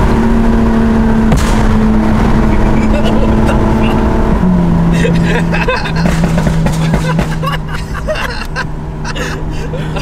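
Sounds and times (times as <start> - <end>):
loud exhaust drone: 0.0 - 10.0.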